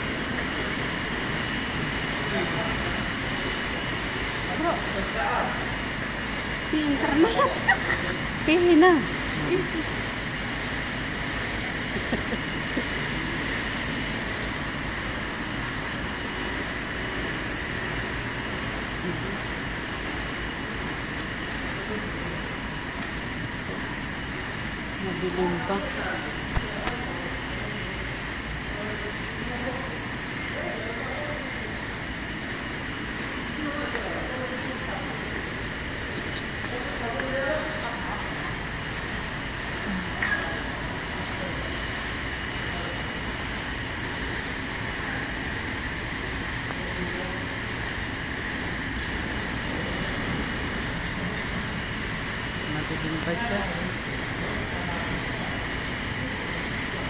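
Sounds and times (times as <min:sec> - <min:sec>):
faint indistinct voices: 0:00.0 - 0:57.0
steady hum: 0:00.0 - 0:57.0.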